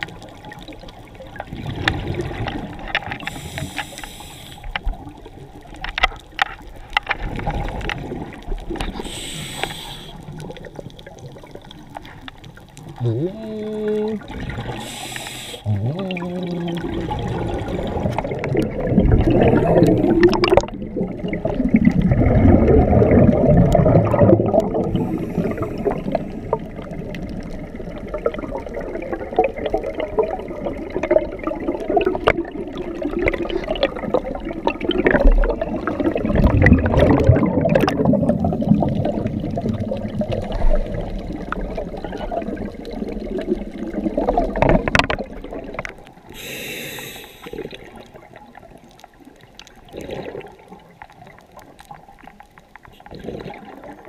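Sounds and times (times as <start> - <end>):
underwater bubbles and splashing: 0.0 - 54.0.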